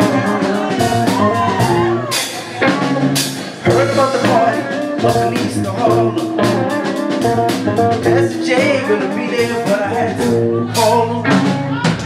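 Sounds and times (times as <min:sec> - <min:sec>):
drum hits: 0:00.0 - 0:12.0
live rock band playing: 0:00.0 - 0:12.0.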